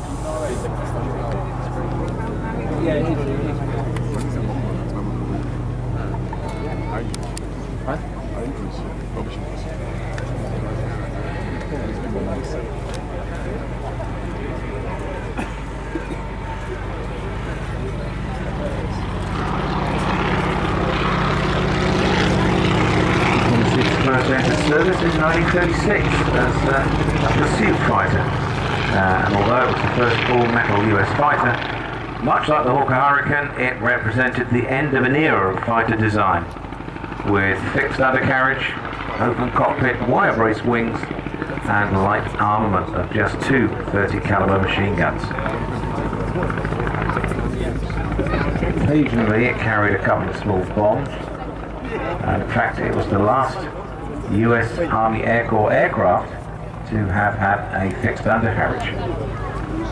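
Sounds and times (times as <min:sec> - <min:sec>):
propeller aircraft flying past: 0:00.0 - 0:59.9.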